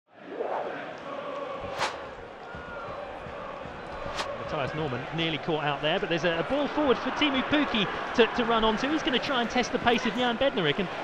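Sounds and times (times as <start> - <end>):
stadium crowd noise: 0.1 - 11.0.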